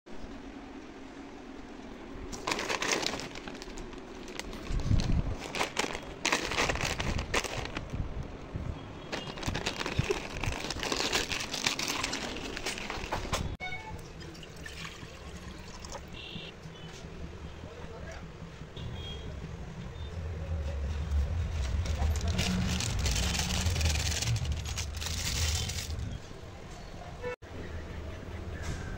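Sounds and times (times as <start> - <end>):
paper bag rustling: 2.2 - 8.2, 9.1 - 13.6, 21.5 - 26.2
crinkly plastic packaging rustling: 2.2 - 8.4, 9.1 - 13.6, 21.6 - 26.2
low rumble: 20.2 - 26.3.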